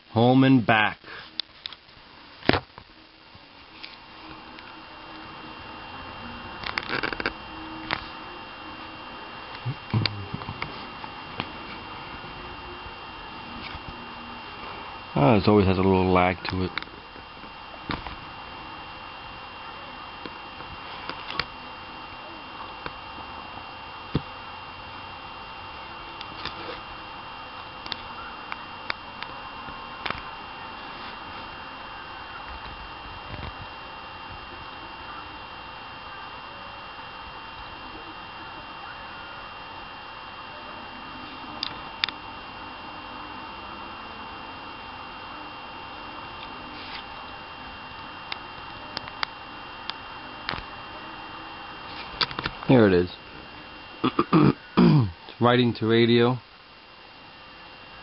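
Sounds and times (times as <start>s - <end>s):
faint high whines: 0.0s - 58.0s
steady background hiss: 0.0s - 58.0s.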